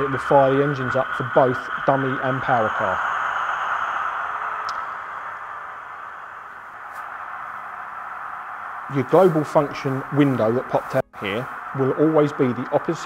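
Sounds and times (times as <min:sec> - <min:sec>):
tinny diesel engine sound idling: 0:00.0 - 0:13.0.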